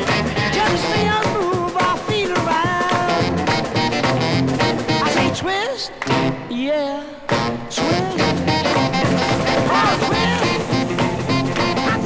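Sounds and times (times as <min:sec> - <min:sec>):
up-tempo rock and roll record: 0:00.0 - 0:12.0.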